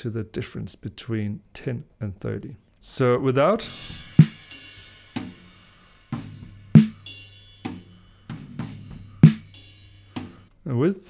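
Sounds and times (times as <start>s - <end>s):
cymbal wash: 3.6s - 10.4s
loud snare drum hits: 6.2s - 7.0s, 9.2s - 9.5s.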